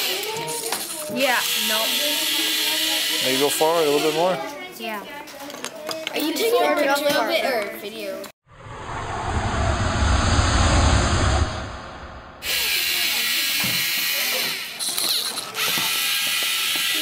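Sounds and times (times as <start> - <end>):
low rumbling noise: 8.5 - 12.8.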